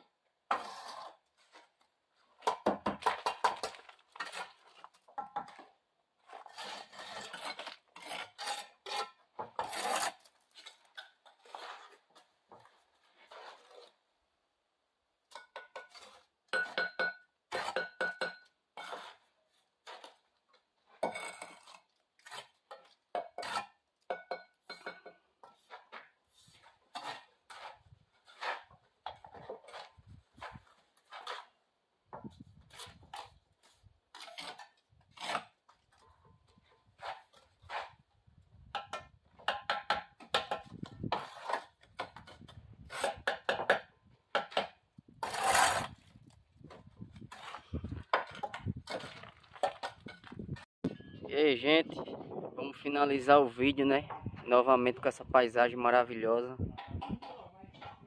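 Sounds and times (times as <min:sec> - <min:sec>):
trowels scraping mortar: 0:00.5 - 0:01.8, 0:03.0 - 0:05.0, 0:06.2 - 0:14.0, 0:15.7 - 0:16.8, 0:17.5 - 0:17.9, 0:18.8 - 0:20.3, 0:20.9 - 0:23.8, 0:25.4 - 0:31.6, 0:32.6 - 0:38.1, 0:39.4 - 0:43.8, 0:44.4 - 0:50.7
trowel tapping bricks: 0:38.8 - 0:42.2.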